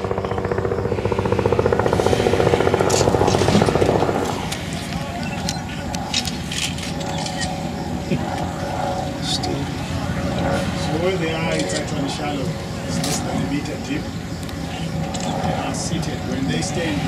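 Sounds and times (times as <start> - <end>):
rapid pulsing sound: 0.0 - 6.5.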